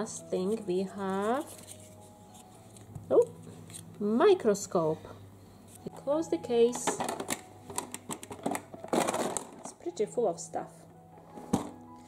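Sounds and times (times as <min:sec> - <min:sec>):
plastic toy case clicking and rattling: 0:06.8 - 0:09.8.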